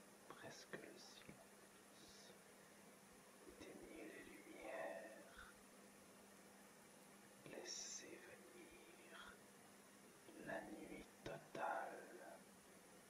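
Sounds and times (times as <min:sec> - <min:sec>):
faint steady hum: 0:00.0 - 0:13.0
person whispering: 0:00.3 - 0:02.4, 0:03.5 - 0:05.6, 0:07.5 - 0:09.4, 0:10.3 - 0:12.4.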